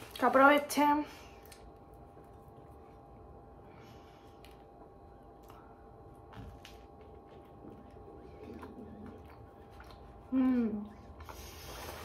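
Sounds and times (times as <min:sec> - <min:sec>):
chewing crunchy toast: 0:04.3 - 0:12.0.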